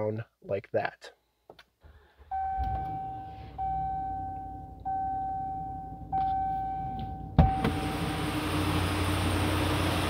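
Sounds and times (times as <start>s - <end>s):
dashboard warning chime: 2.3s - 8.0s.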